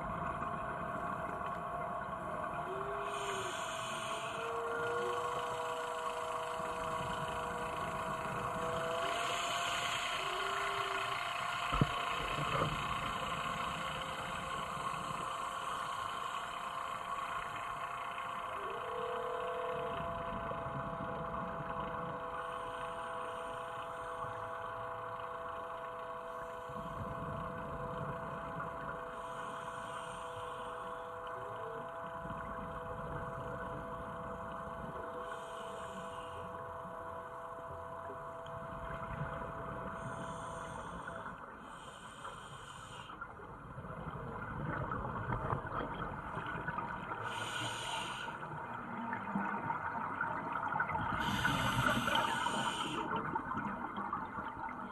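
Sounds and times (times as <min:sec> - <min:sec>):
machinery hum: 0:00.0 - 0:54.9.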